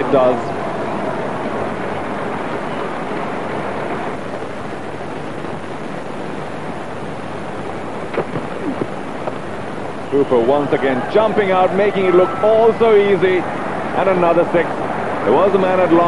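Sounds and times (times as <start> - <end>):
tape hiss: 0.0 - 16.0.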